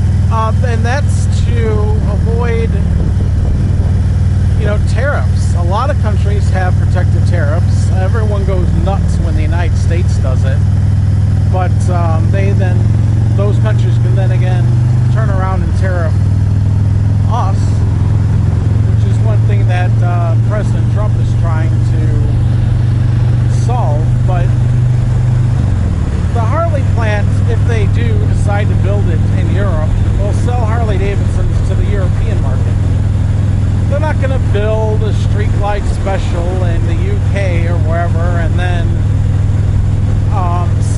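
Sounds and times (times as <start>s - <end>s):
motorcycle engine droning: 0.0s - 40.9s
person talking: 0.3s - 3.3s, 4.5s - 10.7s, 11.4s - 16.3s, 17.3s - 17.8s, 19.0s - 22.5s, 23.4s - 24.6s, 26.3s - 32.8s, 33.9s - 39.0s, 40.3s - 40.9s.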